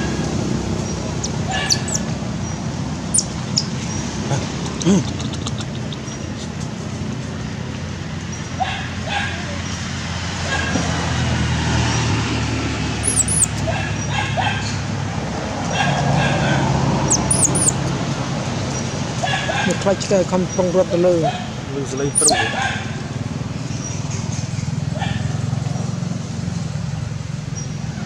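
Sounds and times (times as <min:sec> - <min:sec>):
high arching chirps: 0:00.8 - 0:04.1, 0:13.0 - 0:13.7, 0:17.0 - 0:17.8, 0:22.0 - 0:22.5
short animal calls: 0:13.0 - 0:13.5, 0:17.1 - 0:17.8.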